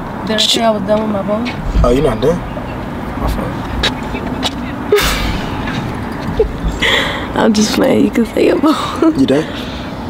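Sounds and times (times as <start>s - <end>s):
low rumble inside a car: 0.2s - 9.8s.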